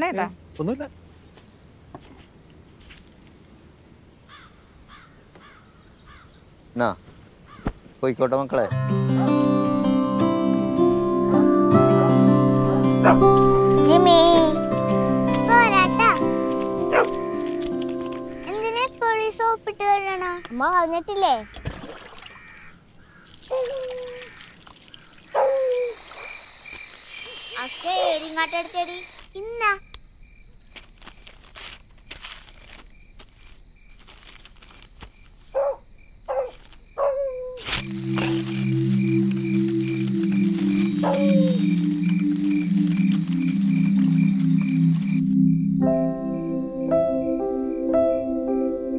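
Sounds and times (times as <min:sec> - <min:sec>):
film music with held notes: 0:08.6 - 0:20.3, 0:37.8 - 0:48.9
crickets trilling: 0:08.8 - 0:48.9
faint pulsing chirp: 0:25.4 - 0:30.6, 0:37.8 - 0:48.9
short falling calls: 0:37.8 - 0:48.9.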